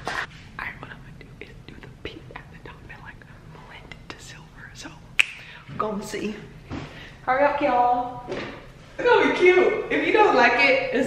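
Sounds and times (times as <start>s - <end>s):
people whispering: 0.6s - 5.8s.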